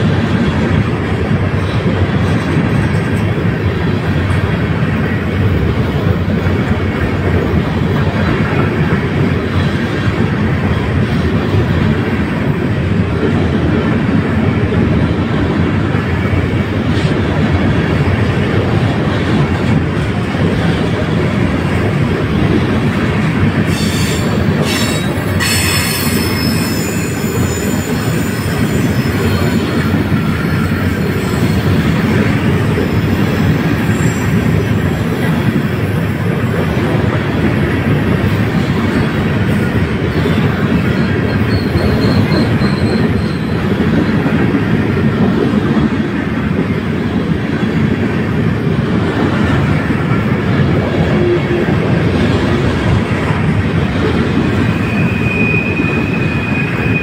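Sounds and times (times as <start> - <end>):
train wheels rumbling on rail: 0.0 - 57.0
high metallic wheel squeal: 23.7 - 29.8, 40.9 - 43.6, 54.8 - 57.0.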